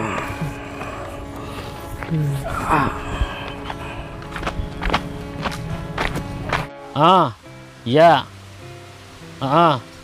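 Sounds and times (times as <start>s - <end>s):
background music with steady beat: 0.0s - 8.9s.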